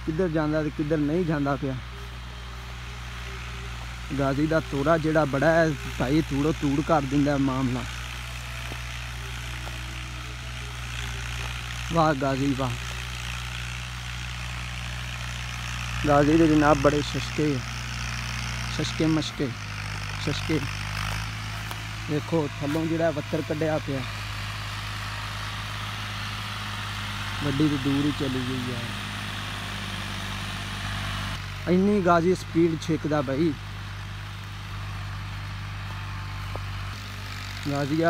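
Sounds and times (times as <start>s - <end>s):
distant tractor engine drone: 0.0s - 38.0s.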